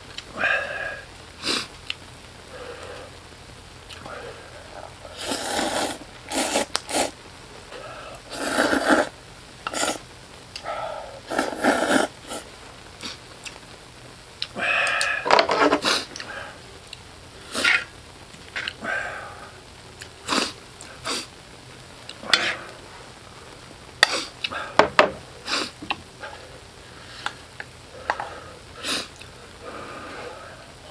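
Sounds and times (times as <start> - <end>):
person slurping noodles: 5.1 - 7.2, 8.0 - 9.1, 9.7 - 10.0, 10.6 - 12.4, 17.4 - 17.9.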